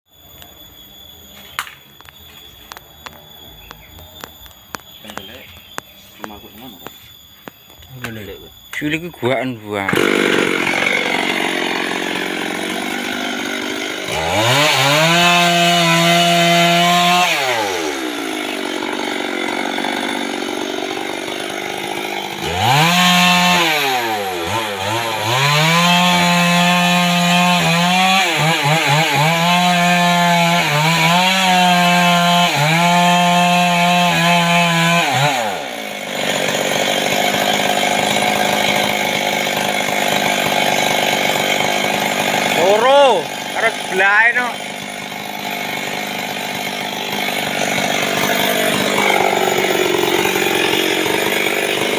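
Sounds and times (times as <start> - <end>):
chainsaw revving and idling: 2.0 - 51.9
chainsaw cutting into wood: 9.8 - 51.9.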